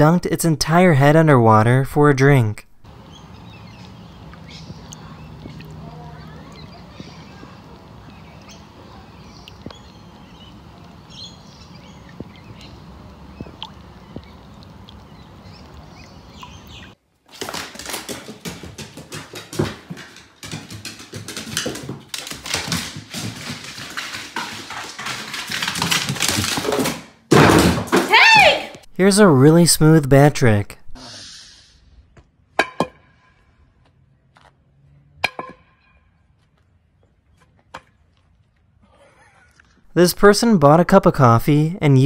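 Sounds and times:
faint ticks and drips: 0:12.0 - 0:16.8
dog on wooden stairs: 0:17.3 - 0:27.1
voice calling out: 0:28.0 - 0:28.8.

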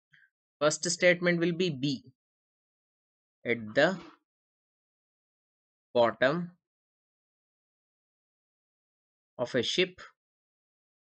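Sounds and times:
person speaking: 0:00.6 - 0:02.1, 0:03.5 - 0:04.2.

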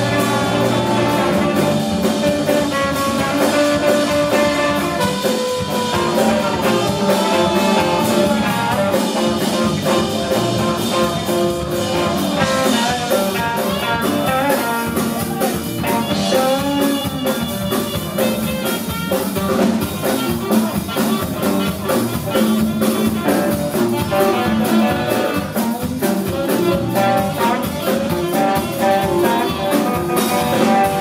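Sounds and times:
blues band playing: 0:00.0 - 0:31.0
saxophone and trombone horn lines: 0:00.0 - 0:31.0.

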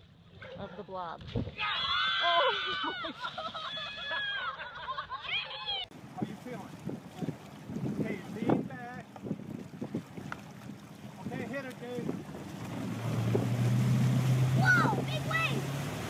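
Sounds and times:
water rushing: 0:05.8 - 0:16.0
wind on microphone: 0:06.0 - 0:15.7
motorboat engine drone: 0:06.0 - 0:16.0
people calling out: 0:14.5 - 0:15.7.

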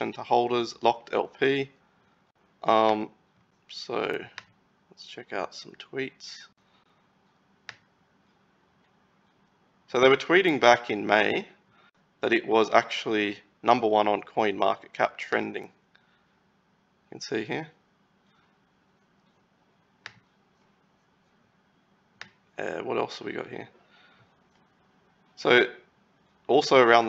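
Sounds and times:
computer mouse click: 0:04.3 - 0:04.6, 0:07.6 - 0:07.9.

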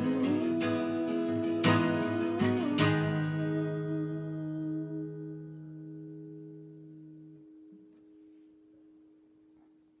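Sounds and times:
guitar chord ringing out: 0:00.0 - 0:08.3.

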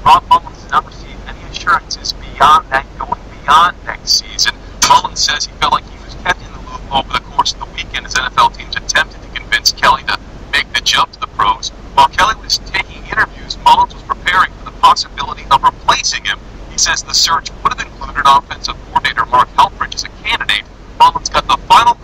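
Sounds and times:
person talking like a newsreader: 0:00.0 - 0:22.0.

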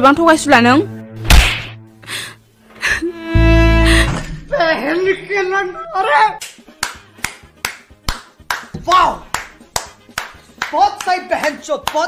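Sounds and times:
rhythmic hand claps: 0:06.4 - 0:12.0.

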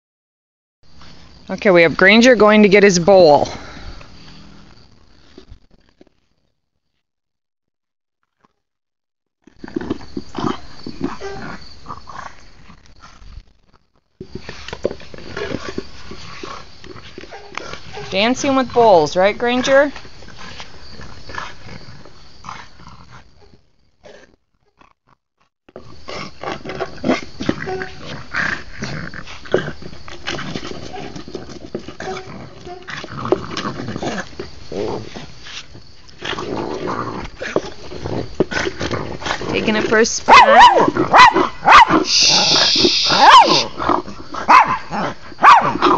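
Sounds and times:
bowl scraping and bumping on grass: 0:14.2 - 0:18.9
dog making throaty noises: 0:40.4 - 0:45.2.

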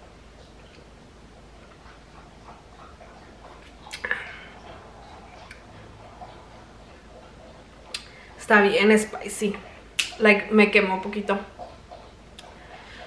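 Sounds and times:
woman sipping and swallowing: 0:02.8 - 0:06.5.

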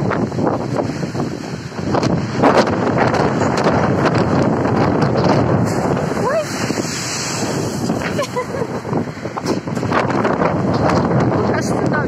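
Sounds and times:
heavy surf against seawall: 0:00.0 - 0:12.0
wind buffeting microphone: 0:00.0 - 0:12.0.

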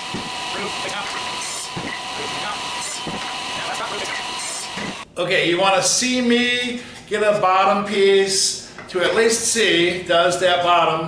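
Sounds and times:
table saw cutting wood: 0:00.0 - 0:05.0.

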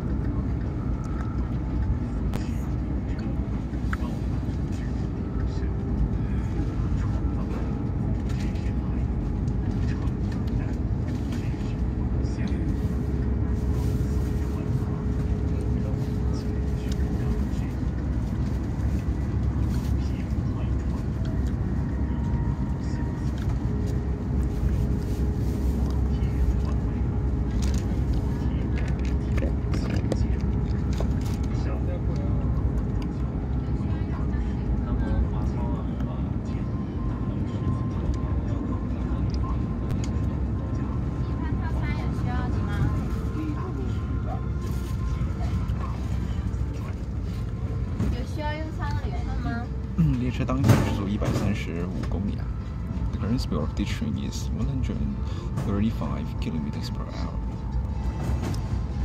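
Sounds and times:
faint steady hum: 0:00.0 - 0:59.0
train rumbling at speed: 0:00.0 - 0:59.0.

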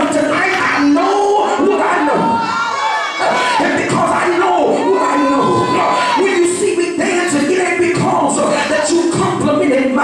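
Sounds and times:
congregation calling out: 0:00.3 - 0:07.5
preacher shouting over a pa: 0:00.5 - 0:06.3.

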